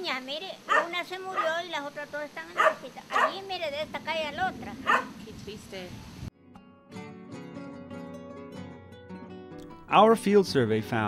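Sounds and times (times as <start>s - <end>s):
elderly woman speaking: 0.0s - 5.9s.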